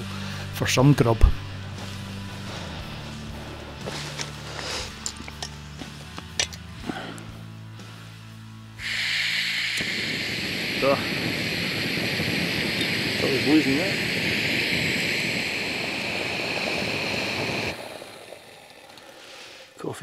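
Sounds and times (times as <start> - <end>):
gas stove hissing: 0.0 - 20.0.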